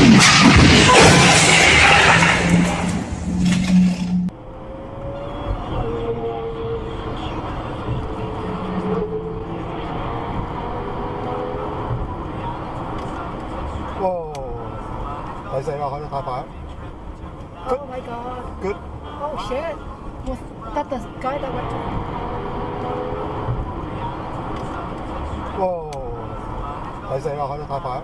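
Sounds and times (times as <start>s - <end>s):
loud car engine: 0.0s - 28.0s
road noise inside moving car: 0.0s - 28.0s
street noise: 0.0s - 28.0s.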